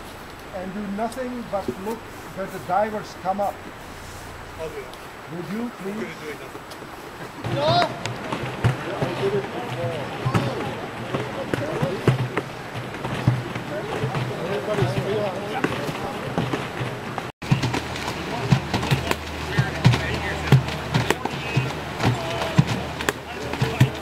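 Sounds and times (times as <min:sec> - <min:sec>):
steady low hum: 0:00.0 - 0:14.5
distant voices talking: 0:00.0 - 0:24.0
water splashes: 0:00.0 - 0:24.0.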